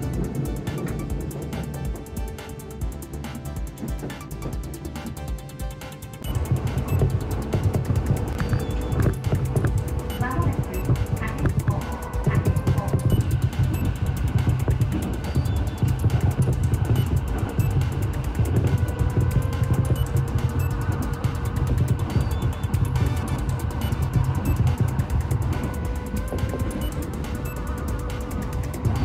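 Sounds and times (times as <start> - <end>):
background music: 0.0 - 29.0
train running rumble: 0.0 - 29.0.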